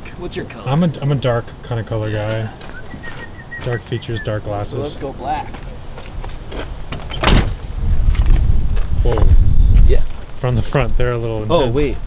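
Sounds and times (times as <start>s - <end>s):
van door slamming shut: 6.9s - 7.6s.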